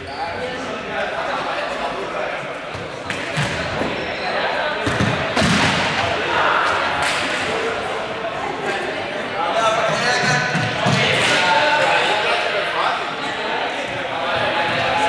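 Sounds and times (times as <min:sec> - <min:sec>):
young people chattering: 0:00.0 - 0:15.0
balls thudding in echoing hall: 0:02.1 - 0:15.0.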